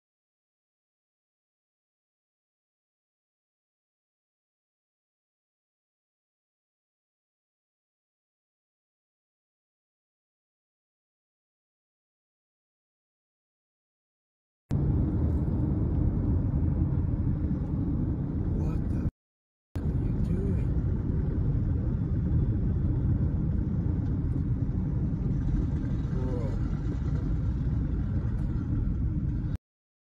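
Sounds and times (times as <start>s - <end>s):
car cabin road rumble: 14.7s - 19.1s, 19.8s - 29.6s.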